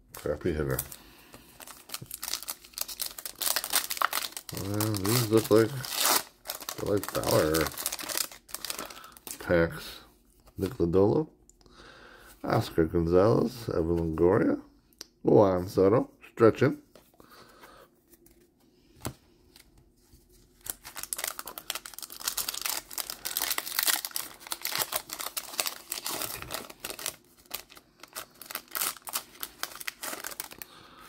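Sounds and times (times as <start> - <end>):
wrapper tearing and crinkling: 1.6 - 9.4, 20.6 - 30.7.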